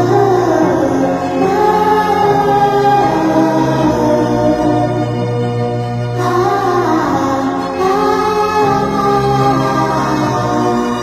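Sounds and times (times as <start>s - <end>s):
sped-up sung vocals: 0.0s - 11.0s.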